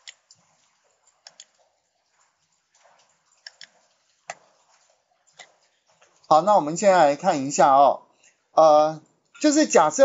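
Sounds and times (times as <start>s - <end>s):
computer mouse clicks: 1.2s - 1.6s, 3.4s - 4.4s.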